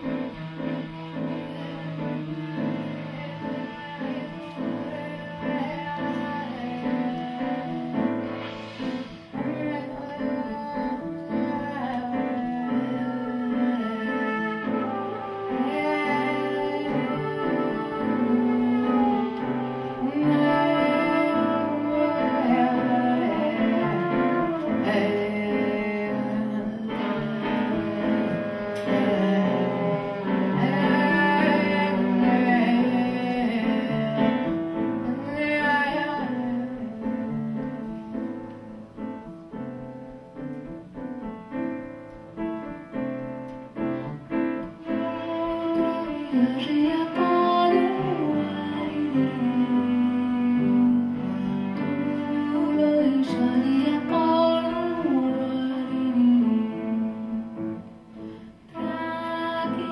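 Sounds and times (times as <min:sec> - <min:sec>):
trumpet: 0:00.0 - 0:38.8, 0:43.8 - 0:57.4
piano chords: 0:00.0 - 0:59.9
woman singing: 0:01.0 - 0:08.3, 0:09.3 - 0:38.8, 0:44.0 - 0:59.9.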